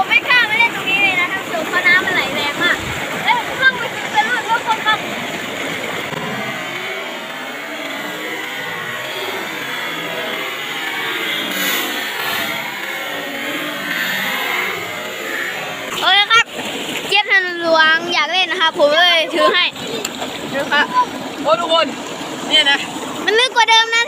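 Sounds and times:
water rushing over rocks: 0.0 - 24.0.

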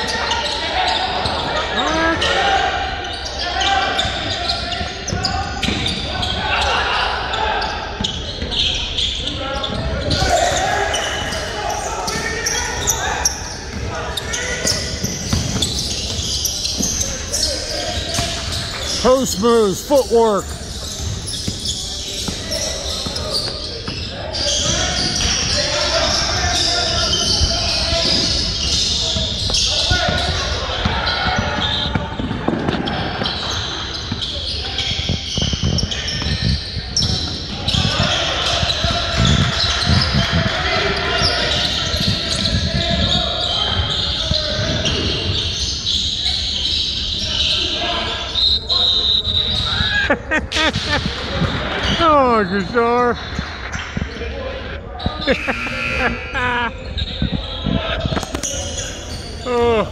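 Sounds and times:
voices calling out: 0.0 - 28.9, 54.6 - 59.9
basketball bouncing on court: 13.7 - 17.1.

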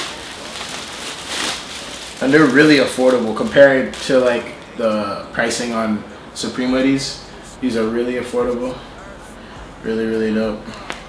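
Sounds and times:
plastic bag crinkling: 0.0 - 4.8.

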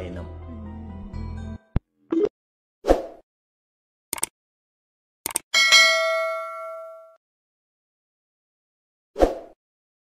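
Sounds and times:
bright bell chime: 5.6 - 7.2.

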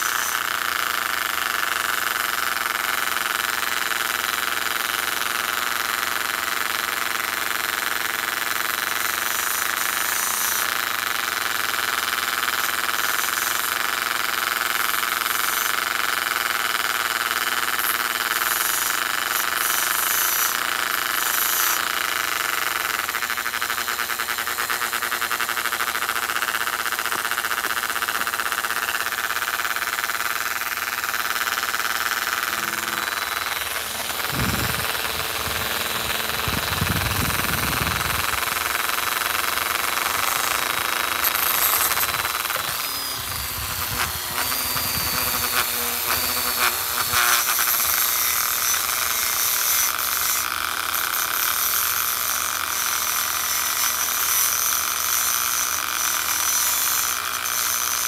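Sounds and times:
rotary tool high whine: 0.0 - 58.0.

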